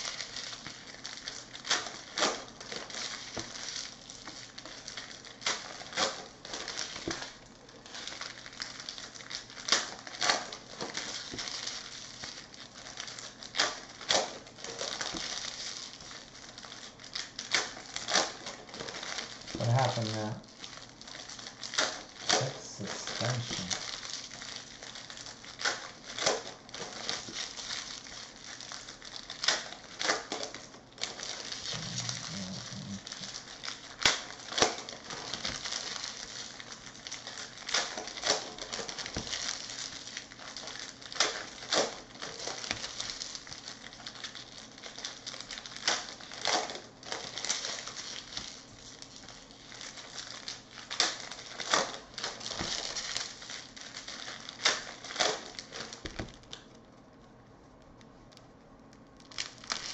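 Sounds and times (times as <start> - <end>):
trading cards rustling: 18.0 - 29.6, 31.1 - 43.1.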